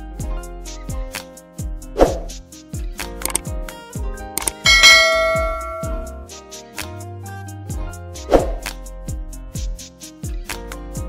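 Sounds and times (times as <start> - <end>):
bright bell ding: 4.7 - 6.2
music with deep kick drum: 4.7 - 6.2, 8.6 - 11.0.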